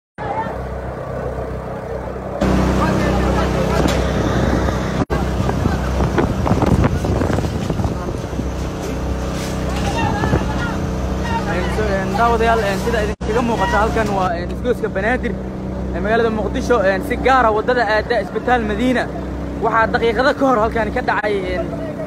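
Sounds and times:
motor engine running: 0.2s - 22.0s
people's voices and calls: 0.2s - 22.0s.

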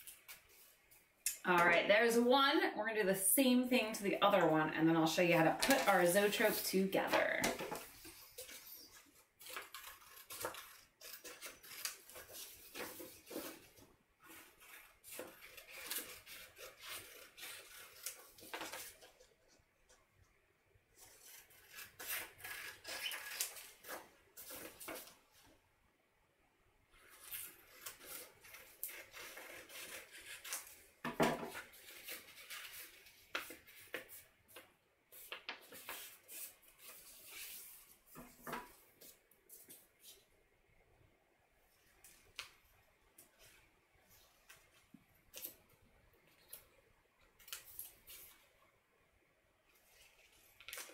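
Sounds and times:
scissors cutting paper: 5.6s - 19.2s, 21.0s - 25.1s, 27.0s - 30.9s
paper rustling: 5.6s - 19.6s, 21.0s - 25.5s, 27.0s - 30.9s, 31.5s - 40.3s, 49.7s - 50.9s.

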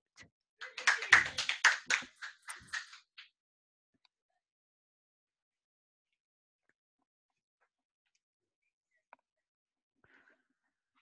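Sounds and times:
hands clapping: 0.6s - 3.3s.

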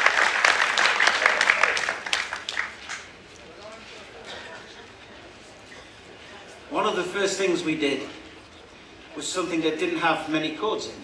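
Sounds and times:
faint voices murmuring: 3.2s - 11.0s.

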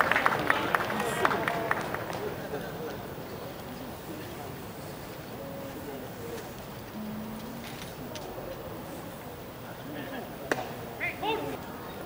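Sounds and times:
spectators chatter: 0.0s - 12.0s.

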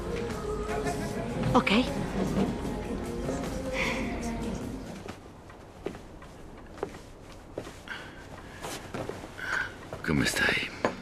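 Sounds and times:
soft footsteps: 4.5s - 10.6s.

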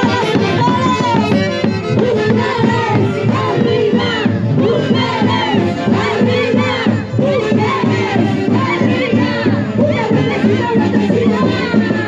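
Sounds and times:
live band music with steady beat: 0.0s - 9.4s.

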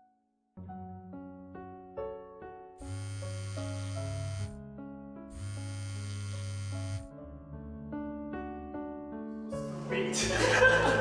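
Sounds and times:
soft piano music: 0.0s - 11.0s
phone vibrating on wooden table: 2.8s - 4.6s, 5.3s - 7.1s.

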